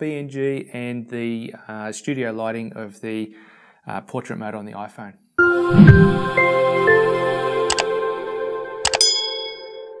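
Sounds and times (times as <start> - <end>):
outro music sting: 5.6 - 6.9
mouse clicks: 8.9 - 9.1
notification bell ding: 8.9 - 9.8.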